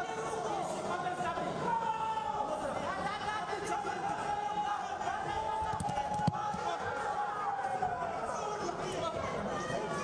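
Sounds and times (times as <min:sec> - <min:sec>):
crowd chatter and calling: 0:00.0 - 0:10.0.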